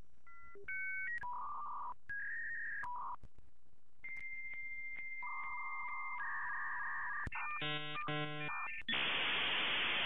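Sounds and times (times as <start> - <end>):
lower rough electronic tone: 7.6 - 8.5.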